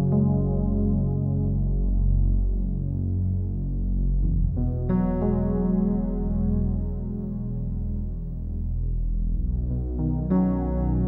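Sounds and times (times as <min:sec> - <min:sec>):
soft music of low chords: 0:00.0 - 0:11.0.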